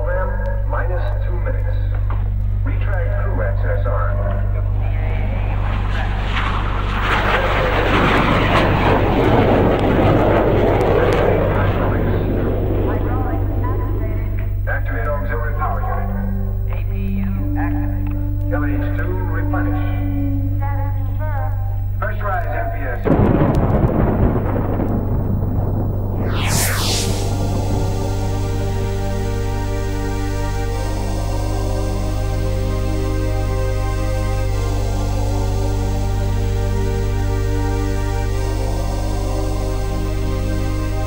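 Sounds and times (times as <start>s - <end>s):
low synth drone: 0.0s - 41.0s
jet aircraft passing: 2.6s - 16.5s, 22.1s - 41.0s
thunder-like rumbling crash: 5.2s - 14.7s, 23.0s - 29.6s.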